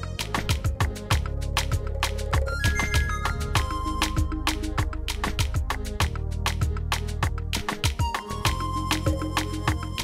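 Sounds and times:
film score music with drum beat: 0.0s - 10.0s
synth melody: 2.5s - 5.1s.

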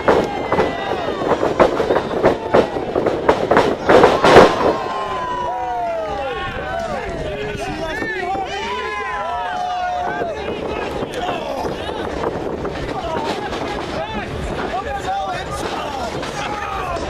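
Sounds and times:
voices yelling: 0.0s - 3.0s, 3.7s - 12.2s, 12.9s - 17.0s.

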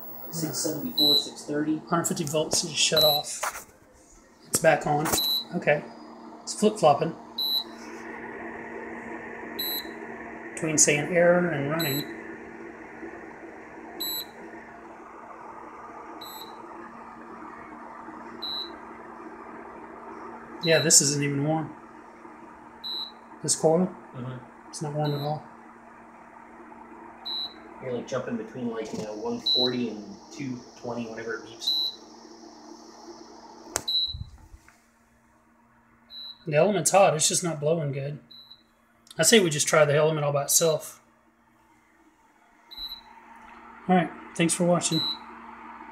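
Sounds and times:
induction cooktop humming: 0.0s - 45.9s.

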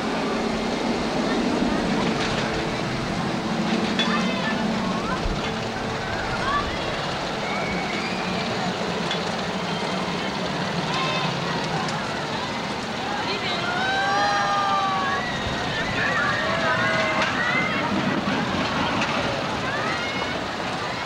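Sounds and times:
crowd of overlapping voices: 0.0s - 21.0s
drawn-out raised voices: 0.0s - 21.0s.

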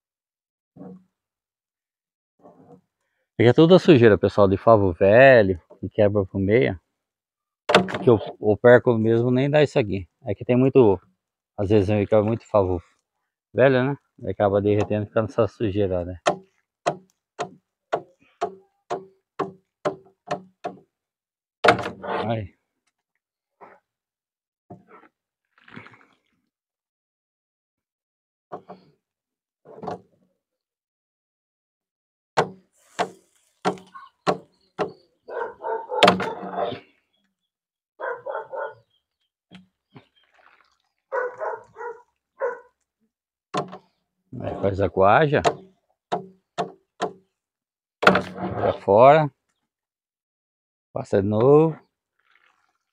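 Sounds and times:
dog barking: 35.3s - 36.6s, 38.0s - 38.9s, 41.1s - 42.8s.

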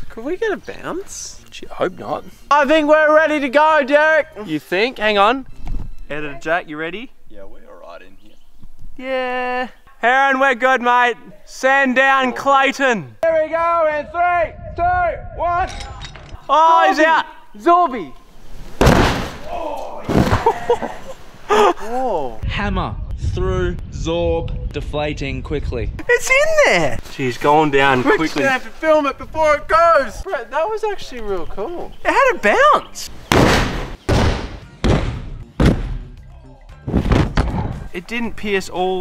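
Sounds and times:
heavy thud into sand: 18.7s - 19.5s, 33.3s - 36.0s, 36.9s - 37.7s.

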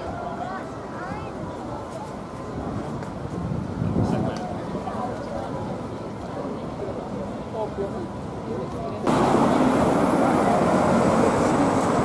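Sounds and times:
bus passing close by: 9.1s - 12.0s.

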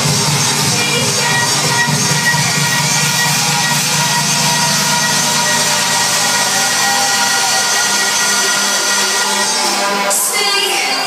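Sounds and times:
buzzing synth line: 0.0s - 9.9s
electronic house music: 0.0s - 11.0s.

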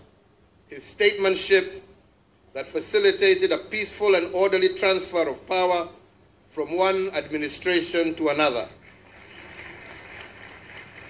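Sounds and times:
muffled audience applause: 8.8s - 11.0s.

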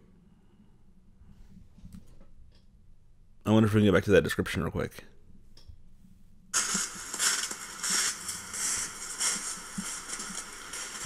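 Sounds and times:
crackling rustle in snow: 6.6s - 11.0s.

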